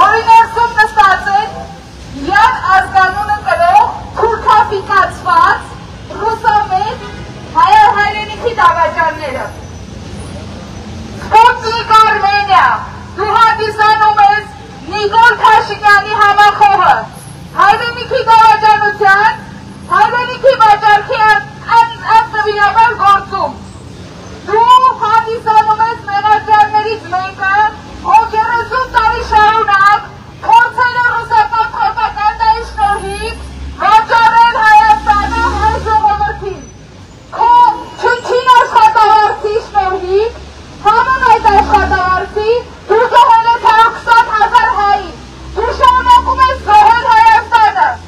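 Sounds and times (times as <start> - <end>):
woman shouting through megaphone: 0.0 - 9.6, 11.2 - 23.6, 24.5 - 36.7, 37.3 - 48.0.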